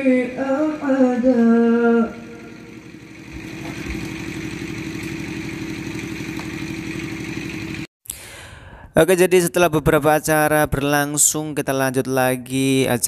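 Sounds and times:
small engine idling: 0.0 - 7.9.

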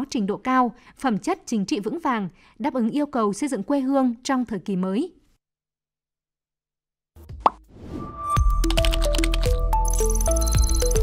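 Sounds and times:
jingle music with deep bass: 8.1 - 11.0.

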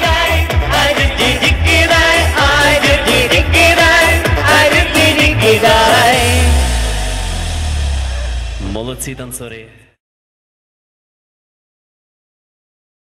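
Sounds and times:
person singing into microphones: 0.0 - 6.9.

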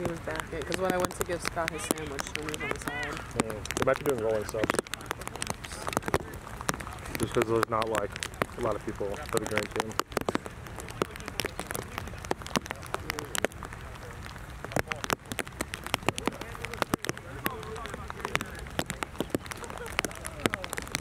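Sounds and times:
raindrops tapping on plastic: 0.0 - 21.0
steady hiss of rain: 0.0 - 21.0.

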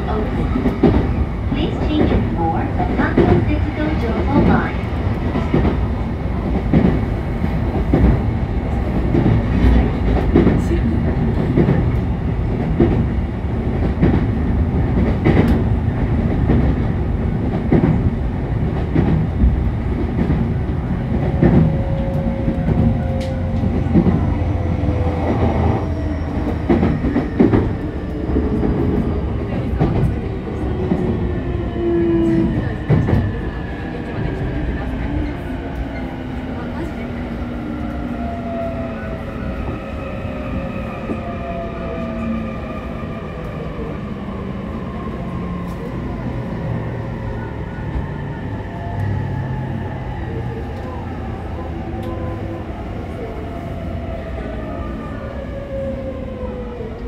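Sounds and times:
train rumble: 0.0 - 57.0.

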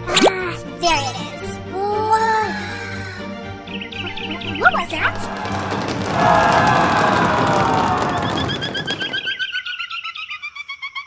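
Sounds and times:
cartoon birds tweeting: 3.7 - 5.6, 8.1 - 11.0.

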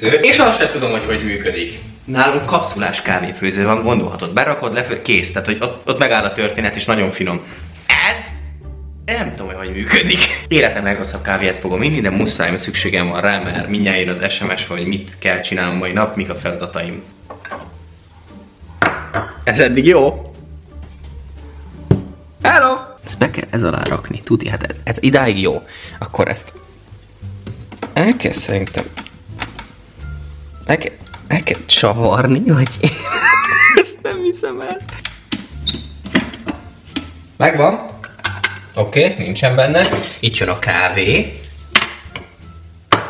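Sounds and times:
glass set down on countertop: 18.8 - 19.4, 21.9 - 22.2.

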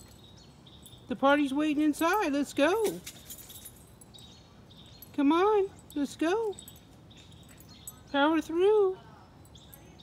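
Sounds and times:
distant birds chirping: 0.0 - 10.0.

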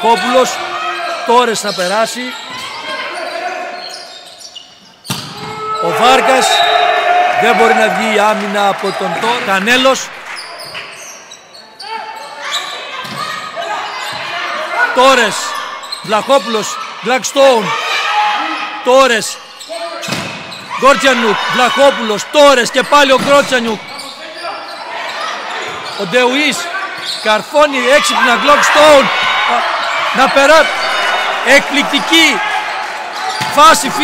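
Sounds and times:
people shouting in a hall: 0.0 - 4.2, 5.2 - 10.7, 11.6 - 34.0
shoes squeaking on court: 1.0 - 6.0, 10.3 - 14.3, 15.2 - 16.4, 19.6 - 20.8, 22.6 - 27.6, 33.1 - 34.0
commentator speaking: 27.3 - 32.4, 33.5 - 34.0.

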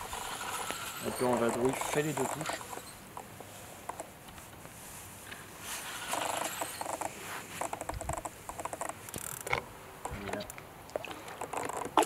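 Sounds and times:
fishing reel clicking and whirring: 0.0 - 3.0, 5.9 - 9.6.

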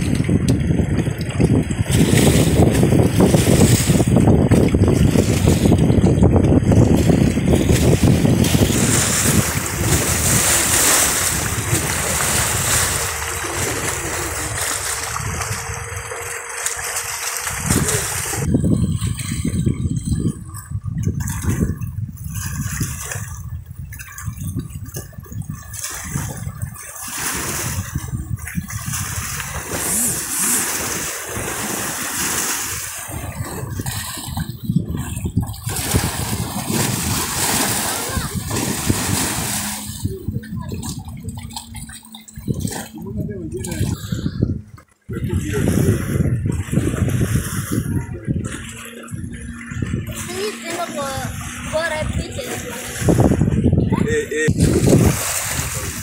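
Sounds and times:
water sloshing and splashing: 0.0 - 56.0
wind on microphone: 0.0 - 56.0.

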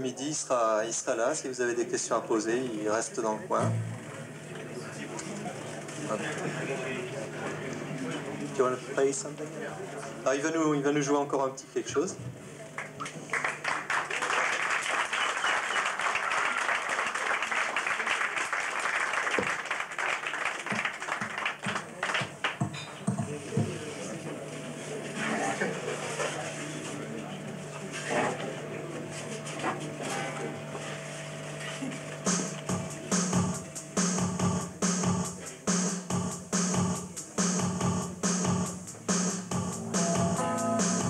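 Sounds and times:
crowd murmuring: 3.2 - 10.2, 23.0 - 35.9
audience applauding: 12.8 - 22.6
drum machine beat with bass: 22.6 - 23.8, 32.2 - 41.0.

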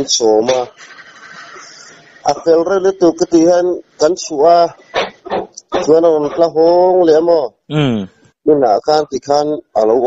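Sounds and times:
man speaking: 0.0 - 0.7, 2.2 - 4.8, 5.6 - 10.0.

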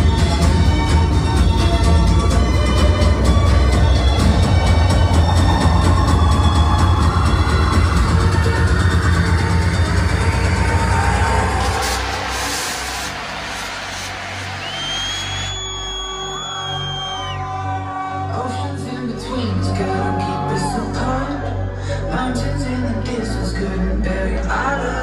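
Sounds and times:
electronic dance music: 0.0 - 25.0.

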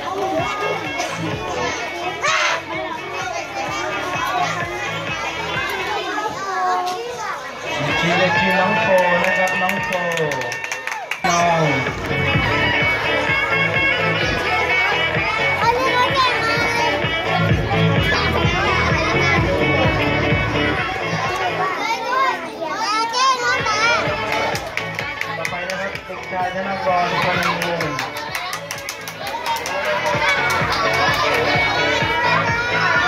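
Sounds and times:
backing music: 0.0 - 6.0, 7.6 - 21.8, 23.4 - 33.0
children chattering: 0.0 - 10.5, 11.2 - 33.0.

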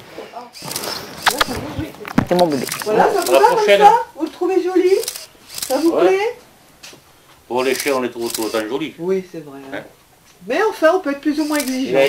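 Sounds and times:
kissing smacks: 0.9 - 1.6.

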